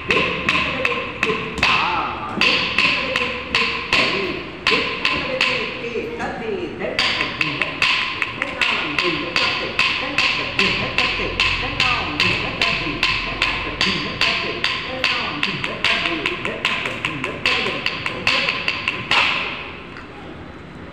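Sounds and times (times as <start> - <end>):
rhythmic wooden tapping: 0.0 - 6.2, 7.0 - 19.9
person chanting: 0.0 - 19.8.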